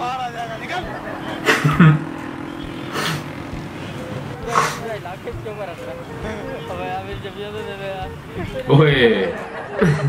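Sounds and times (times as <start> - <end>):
motor vehicles running: 0.0 - 10.0.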